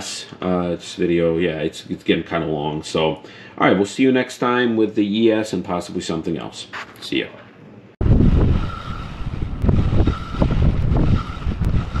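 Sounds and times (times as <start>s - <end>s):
wind buffeting microphone: 8.0s - 12.0s.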